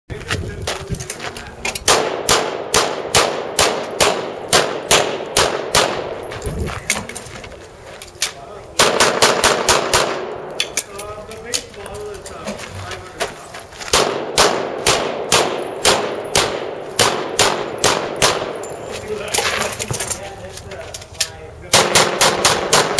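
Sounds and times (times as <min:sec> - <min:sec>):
handgun shots: 0:01.8 - 0:06.1, 0:08.8 - 0:10.8, 0:13.9 - 0:18.6, 0:21.7 - 0:22.9.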